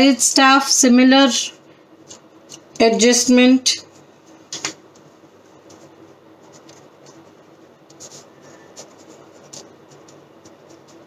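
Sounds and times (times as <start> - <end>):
pen scratching on paper: 5.7 - 11.0.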